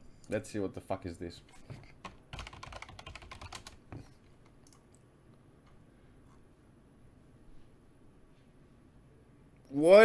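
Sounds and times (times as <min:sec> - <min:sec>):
computer keyboard typing: 0:02.0 - 0:03.8.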